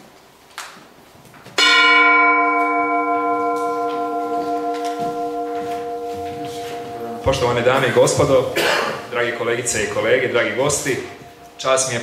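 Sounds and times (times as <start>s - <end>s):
bell ringing: 1.6s - 8.6s, 9.7s - 12.0s.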